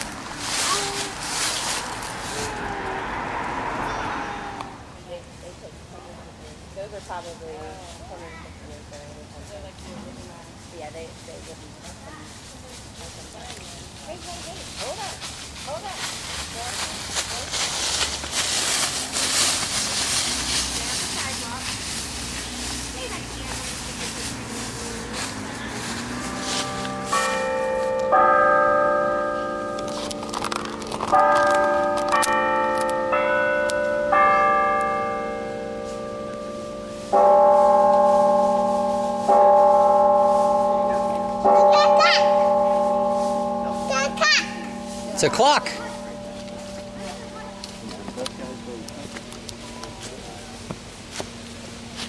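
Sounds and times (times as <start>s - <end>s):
bell striking the hour: 23.6s - 50.7s
clock tower bells chiming a tune: 25.6s - 50.6s.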